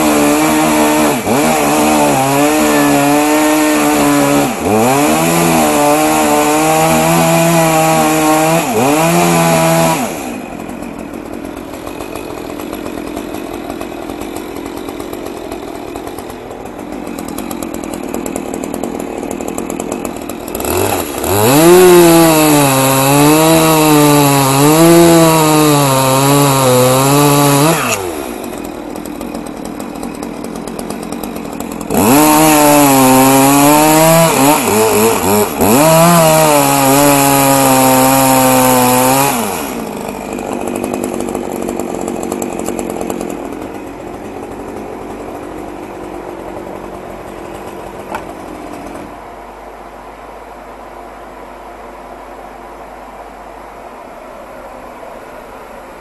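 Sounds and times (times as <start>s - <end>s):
chainsaw revving and cutting wood: 0.0s - 49.4s.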